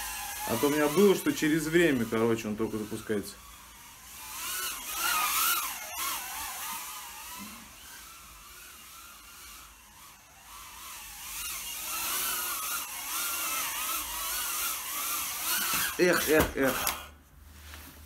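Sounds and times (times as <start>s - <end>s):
drone motors whining: 0.0s - 17.1s.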